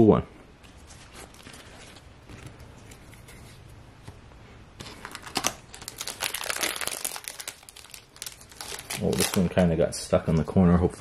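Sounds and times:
foil wrapper crinkling: 4.8 - 9.8.

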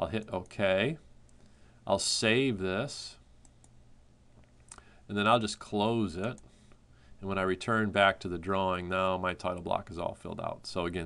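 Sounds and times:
faint computer clicks: 6.2 - 6.5.

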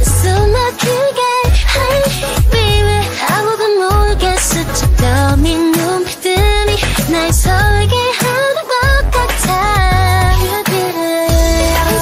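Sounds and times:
synth-pop song: 0.0 - 12.0
synthetic female singing voice: 0.0 - 12.0
heavy bass line: 4.0 - 5.6, 6.4 - 8.0, 8.8 - 10.5, 11.3 - 12.0.

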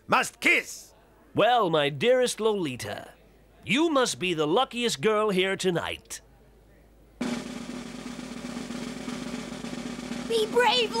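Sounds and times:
snare drum roll: 7.2 - 11.0.

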